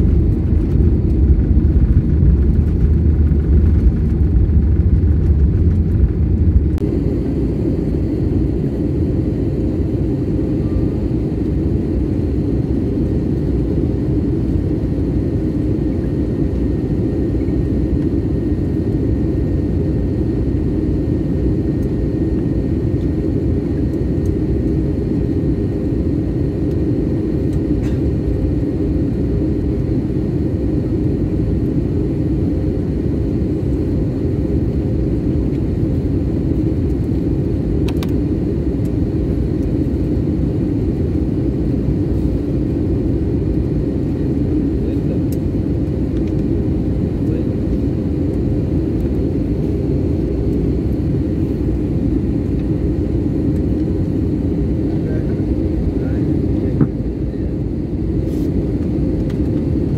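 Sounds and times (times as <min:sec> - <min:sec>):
engine rumble and rushing air: 0:00.0 - 0:59.9.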